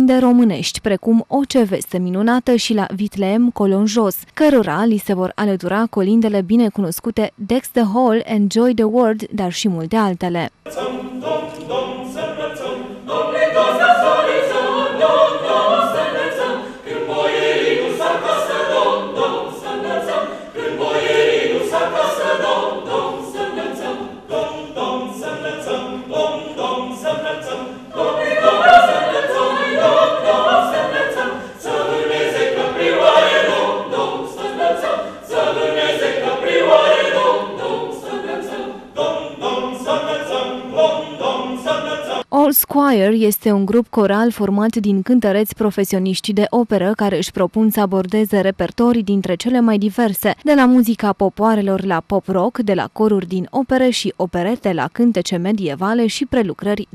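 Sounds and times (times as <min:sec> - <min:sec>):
mixed choir singing a cappella: 0:10.6 - 0:42.3.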